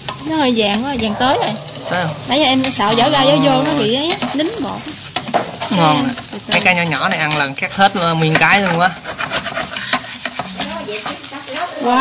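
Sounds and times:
crepe sizzling in oil: 0.0s - 12.0s
spatula scraping a pan: 0.0s - 12.0s.

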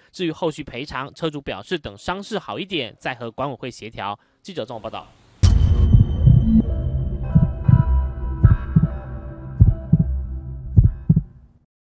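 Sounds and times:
held synth chord: 5.4s - 10.7s
deep low thumps: 5.4s - 11.4s.

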